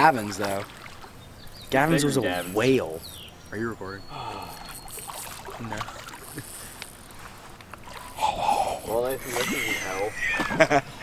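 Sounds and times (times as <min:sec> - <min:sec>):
water sloshing and splashing: 0:00.0 - 0:02.9, 0:04.5 - 0:10.8.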